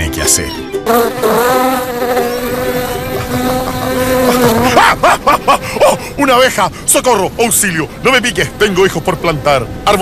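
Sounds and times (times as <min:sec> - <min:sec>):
bee buzzing: 0:00.8 - 0:05.1.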